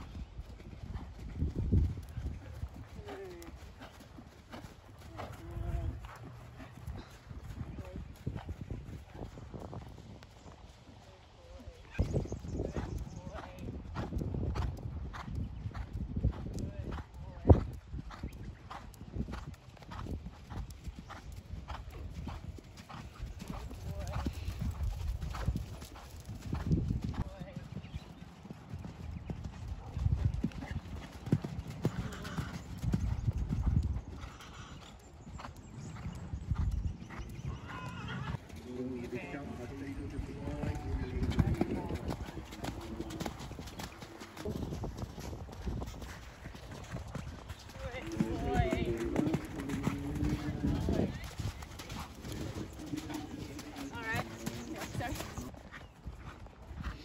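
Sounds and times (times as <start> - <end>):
horse hoofbeats on sand: 0.5 - 10.0, 35.8 - 57.0
voices: 37.7 - 44.3, 47.7 - 55.5.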